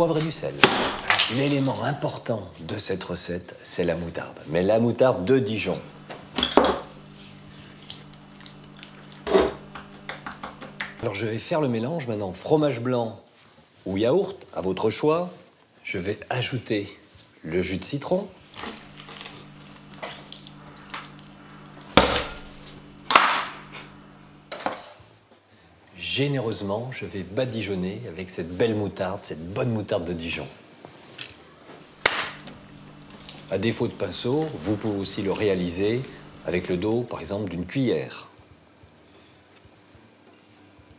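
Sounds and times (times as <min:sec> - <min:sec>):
steady low hum: 0:05.3 - 0:11.2, 0:18.4 - 0:24.6, 0:31.8 - 0:37.1
wet squish of mustard: 0:18.5 - 0:21.3.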